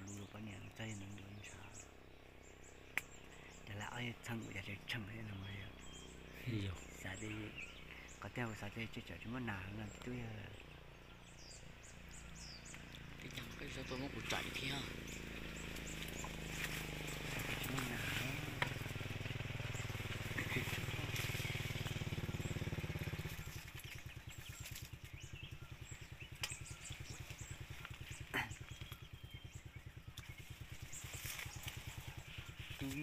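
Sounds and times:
small engine running: 0:00.0 - 0:33.0.

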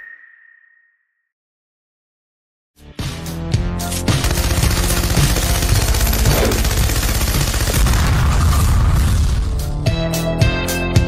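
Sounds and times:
machine-gun fire: 0:04.1 - 0:09.4.

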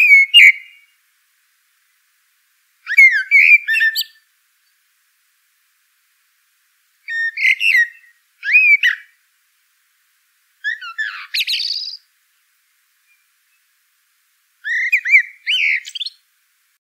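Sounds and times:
songbird whistling: 0:00.0 - 0:01.0, 0:02.8 - 0:04.2, 0:07.0 - 0:09.2, 0:10.6 - 0:12.1, 0:13.0 - 0:13.7, 0:14.6 - 0:16.3.

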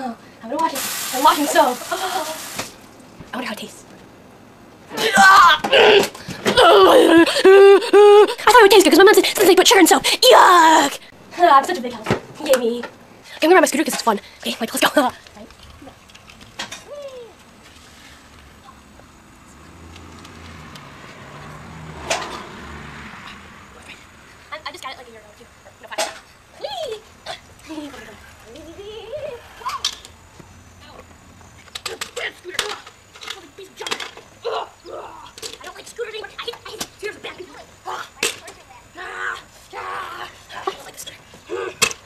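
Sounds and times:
scooter wheels rolling on concrete: 0:00.0 - 0:42.0.

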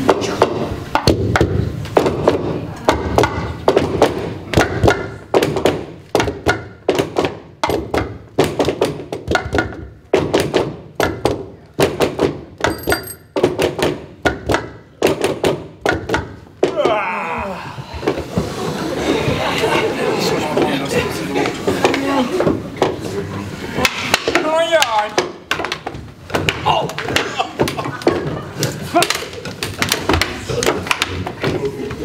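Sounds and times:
sticks knocking on wooden floor: 0:23.8 - 0:28.4.

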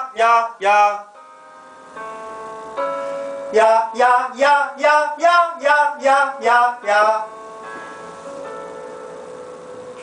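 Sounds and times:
person singing vocal warm-up: 0:00.0 - 0:01.2, 0:03.4 - 0:07.4.

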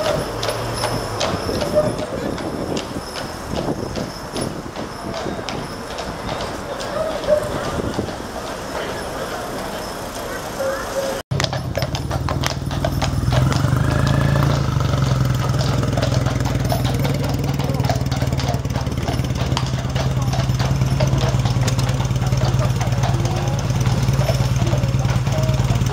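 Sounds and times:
horses' hooves clopping on road: 0:00.0 - 0:25.9
vehicle engine idling: 0:08.8 - 0:25.9.

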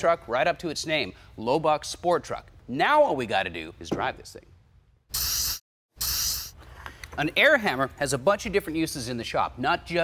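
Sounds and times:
paint spray gun hissing: 0:05.2 - 0:06.5.

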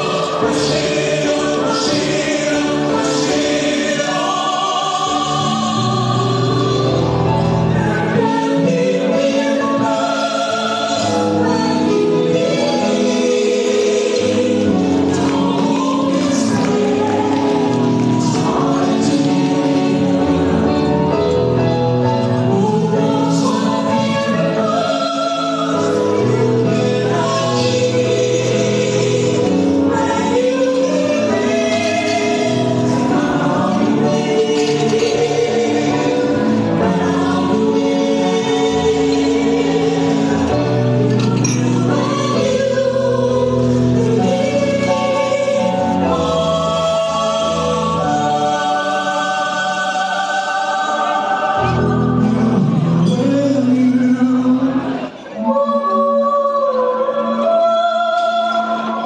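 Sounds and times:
vocal quartet singing in harmony: 0:00.0 - 0:59.0.

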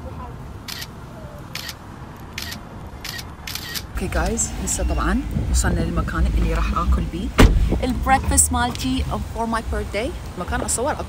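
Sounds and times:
camera shutter clicks: 0:00.7 - 0:00.9, 0:01.5 - 0:03.9
wind rumble on microphone: 0:03.9 - 0:11.0.

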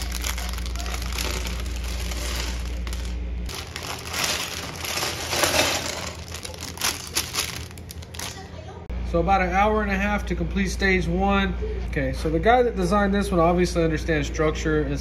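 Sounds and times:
plastic bag crinkling: 0:00.0 - 0:08.6.

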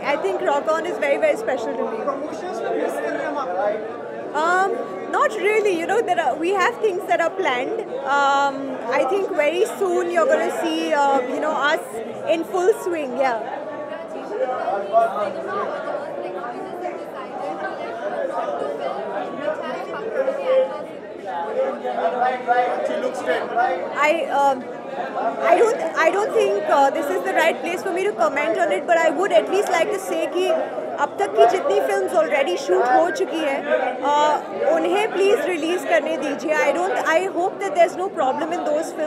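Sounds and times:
crowd chatter: 0:00.0 - 0:39.0
indistinct voices talking: 0:22.8 - 0:39.0.

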